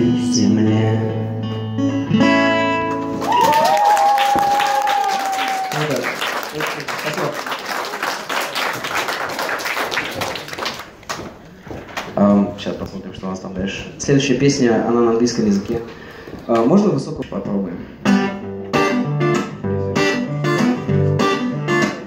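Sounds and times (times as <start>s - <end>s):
audience applauding and cheering: 3.1s - 11.5s.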